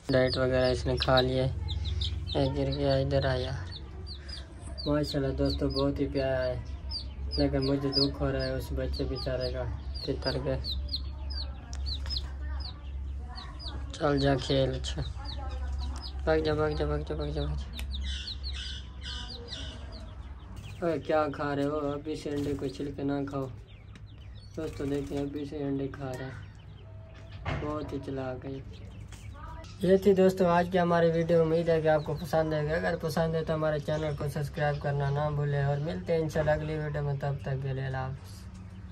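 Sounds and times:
chicks peeping: 0:00.0 - 0:38.9.

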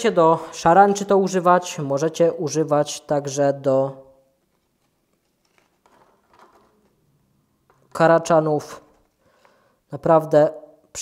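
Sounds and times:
faint handling noises: 0:04.4 - 0:08.0.

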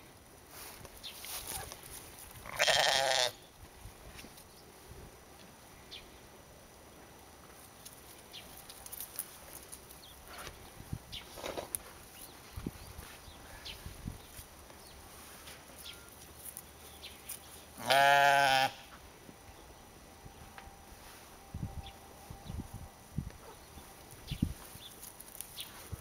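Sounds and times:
sheep bleating: 0:02.5 - 0:03.4, 0:17.8 - 0:18.9
faint clicks and rustles: 0:07.1 - 0:17.6, 0:23.3 - 0:26.0.

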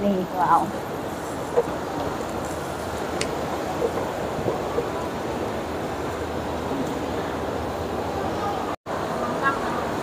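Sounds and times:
busy shopping mall noise: 0:00.0 - 0:10.0.

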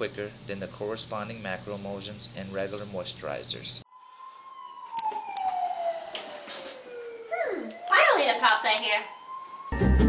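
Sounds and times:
police siren wail: 0:03.9 - 0:10.0.

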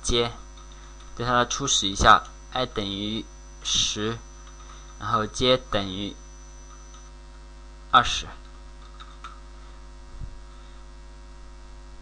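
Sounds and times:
electrical mains hum: 0:00.0 - 0:12.0
faint high whine: 0:00.0 - 0:12.0.

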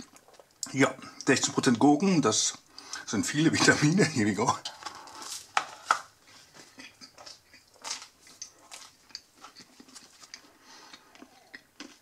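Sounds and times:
person chewing crusty bread: 0:00.0 - 0:01.3, 0:04.7 - 0:12.0.

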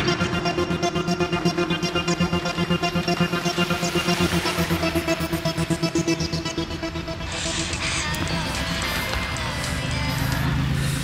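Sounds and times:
background music: 0:00.0 - 0:11.0
vehicle engine hum: 0:00.0 - 0:11.0.

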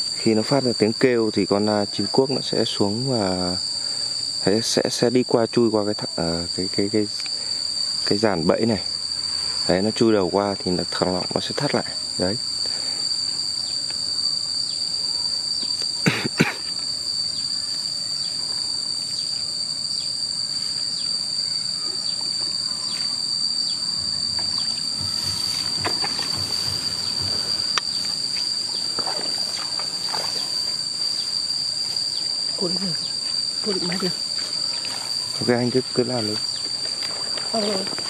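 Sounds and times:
high-pitched insect drone: 0:00.0 - 0:38.0
faint water splashing: 0:28.7 - 0:30.8, 0:33.7 - 0:35.5, 0:36.8 - 0:38.0.

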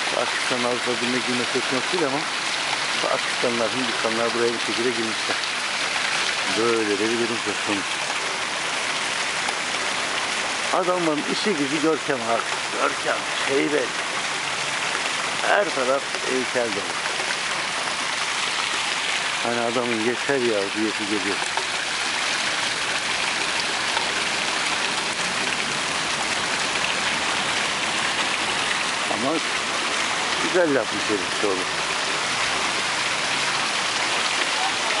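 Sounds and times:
fountain water splashing: 0:00.0 - 0:35.0.

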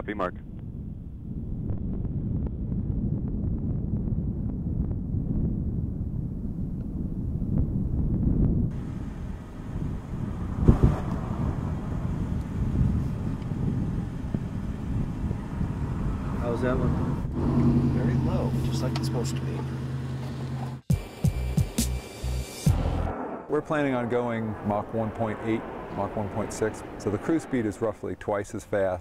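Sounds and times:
wind rumbling on microphone: 0:00.0 - 0:19.6, 0:22.8 - 0:29.0.

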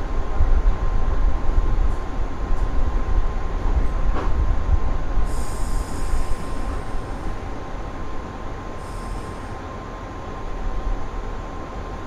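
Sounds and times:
electric train rumble: 0:00.0 - 0:12.0
high brake squeal: 0:08.8 - 0:09.5.

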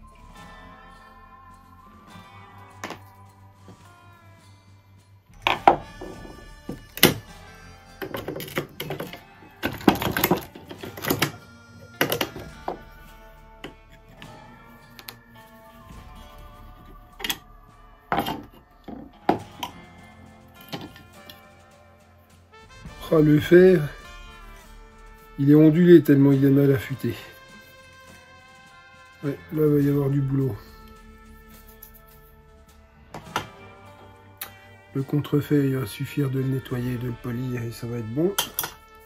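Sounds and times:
background music: 0:00.0 - 0:39.0
metal parts knocking on wood: 0:08.0 - 0:13.0, 0:20.6 - 0:21.4.

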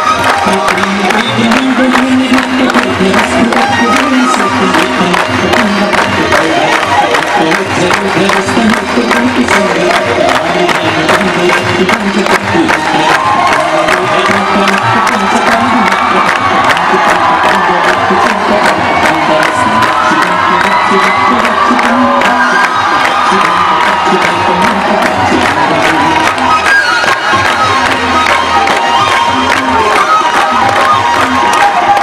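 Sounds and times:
crowd singing and cheering: 0:00.0 - 0:32.0
devotional music: 0:00.0 - 0:32.0.

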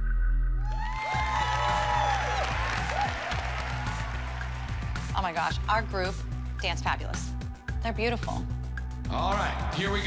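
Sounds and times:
background music: 0:00.1 - 0:10.0
high whoops: 0:00.6 - 0:04.1
audience applauding and cheering: 0:00.7 - 0:06.0.

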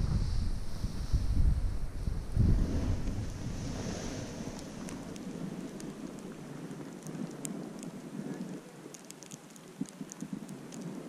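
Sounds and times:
snowboard sliding on snow: 0:00.0 - 0:08.9, 0:10.3 - 0:11.0
wind buffeting microphone: 0:00.0 - 0:11.0.

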